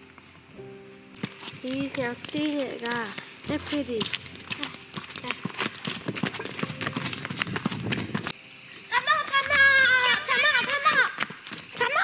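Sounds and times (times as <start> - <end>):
footsteps on hard path: 1.1 - 8.4, 9.0 - 12.0.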